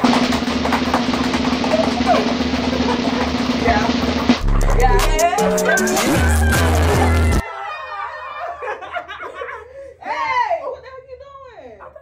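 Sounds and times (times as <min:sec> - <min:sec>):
snare drum roll: 0:00.0 - 0:07.4.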